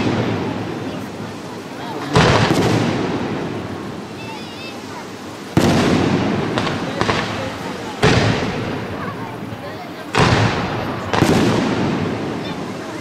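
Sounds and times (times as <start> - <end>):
fireworks bangs: 0.0 - 13.0.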